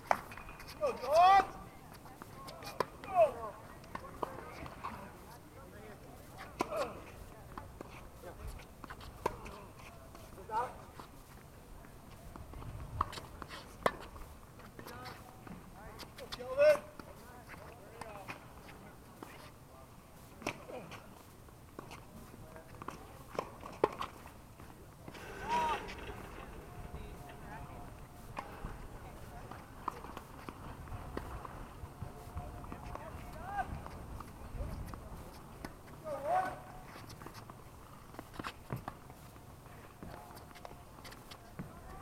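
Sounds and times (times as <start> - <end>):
players calling out: 25.0 - 29.2.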